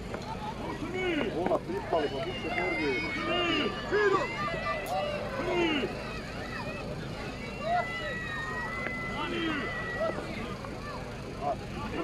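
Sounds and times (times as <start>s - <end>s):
crowd voices and chatter: 0.0s - 12.0s.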